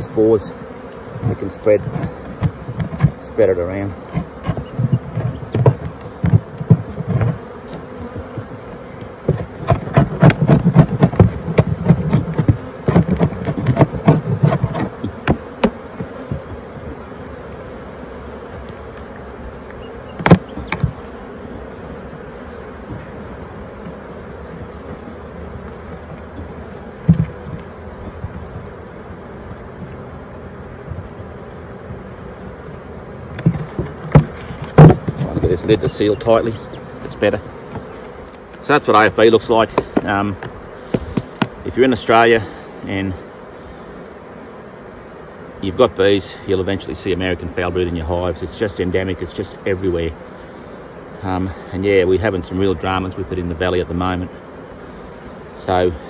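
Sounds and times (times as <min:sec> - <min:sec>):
honeybees buzzing: 0:00.0 - 0:56.0
knocks on wooden box: 0:04.1 - 0:07.5, 0:08.1 - 0:16.5, 0:20.2 - 0:21.0, 0:33.4 - 0:35.6.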